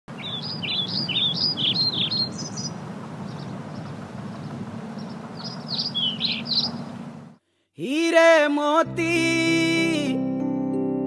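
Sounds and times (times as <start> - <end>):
bird chirping: 0.1 - 7.4
low outdoor hum: 0.1 - 7.4.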